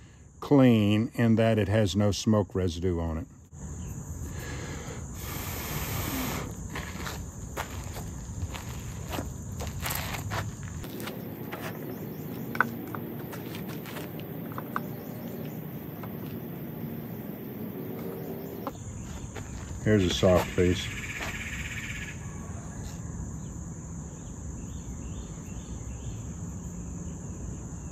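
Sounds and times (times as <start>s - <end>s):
insects chirping: 0.0s - 27.9s.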